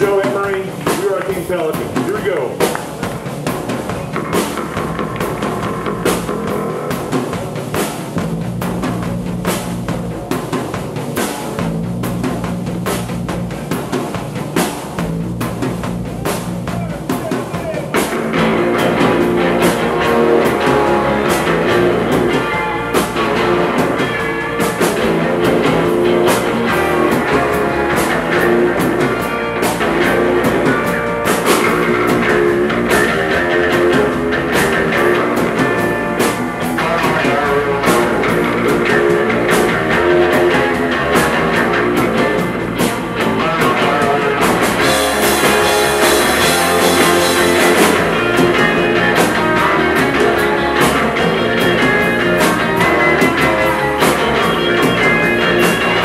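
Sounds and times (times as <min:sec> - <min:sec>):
surf rock band playing live: 0:00.0 - 0:56.0.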